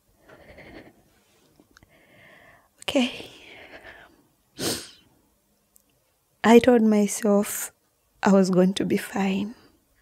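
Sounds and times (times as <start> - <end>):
woman breathing: 0.0 - 5.1
woman sniffing: 3.5 - 5.1.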